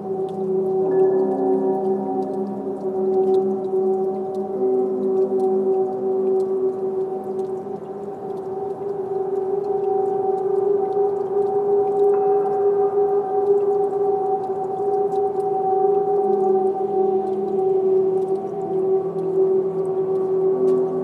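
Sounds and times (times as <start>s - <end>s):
ambient synthesizer drone music: 0.0s - 21.0s.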